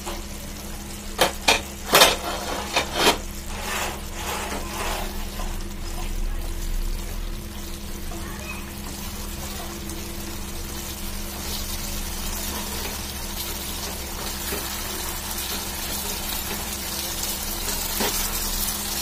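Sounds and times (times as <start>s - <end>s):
food sizzling in pan: 0.0s - 19.0s
wooden spatula scraping pan: 1.9s - 5.7s.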